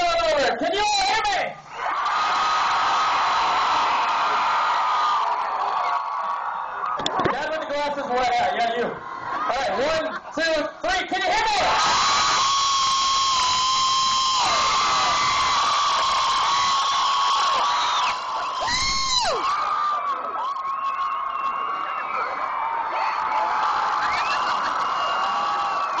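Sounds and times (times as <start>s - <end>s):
crowd screaming and cheering: 0.0s - 26.0s
person whooping: 11.6s - 19.5s.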